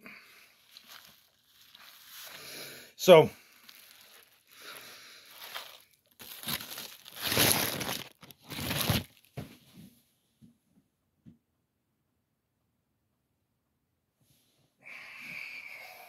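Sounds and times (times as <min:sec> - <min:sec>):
foil wrapper crinkling: 0:00.6 - 0:02.7, 0:03.4 - 0:09.4.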